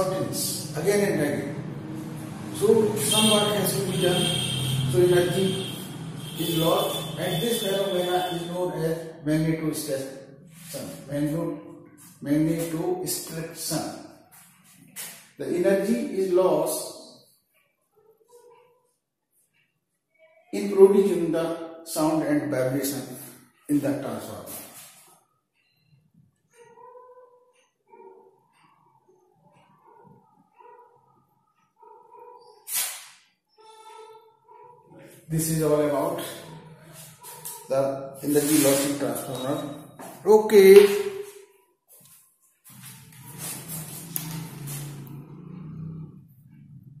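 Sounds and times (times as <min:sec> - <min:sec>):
marker squeaking on whiteboard: 0:17.3 - 0:19.8, 0:31.6 - 0:40.2, 0:40.8 - 0:45.0.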